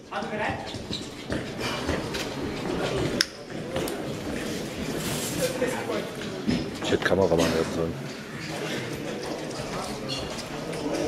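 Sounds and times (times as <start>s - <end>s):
people chattering in echoing hall: 0.0s - 11.0s.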